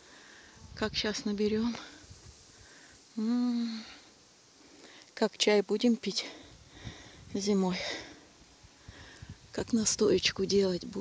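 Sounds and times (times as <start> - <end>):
woman humming: 3.2 - 4.0.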